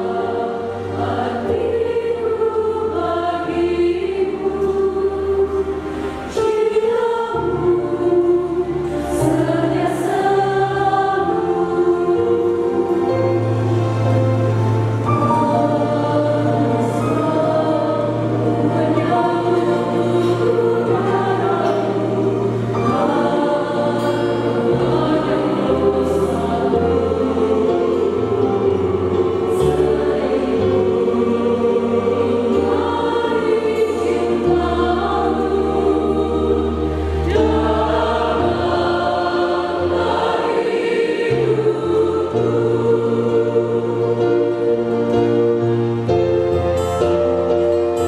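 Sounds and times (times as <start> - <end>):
mixed choir singing a hymn: 0.0 - 48.0.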